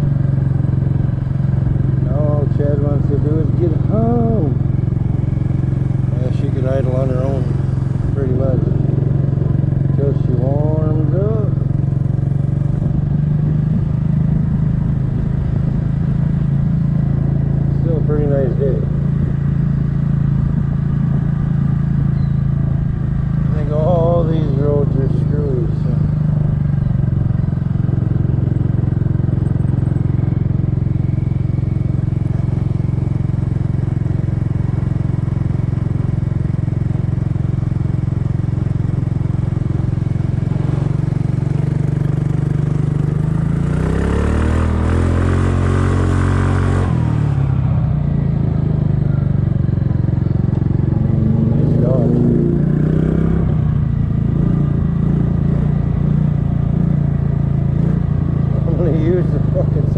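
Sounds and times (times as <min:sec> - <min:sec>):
scooter engine running: 0:00.0 - 0:59.9.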